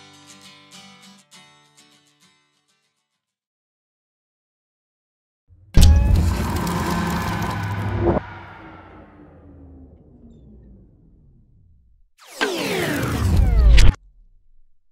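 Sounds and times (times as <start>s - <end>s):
whoosh with falling sweeps: 6.3s - 14.0s.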